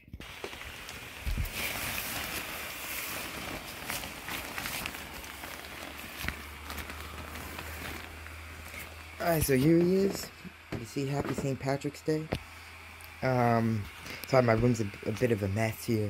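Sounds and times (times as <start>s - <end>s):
blower fan running: 0.0s - 16.0s
low steady hum: 0.0s - 16.0s
fabric rustling and crinkling: 0.2s - 10.4s.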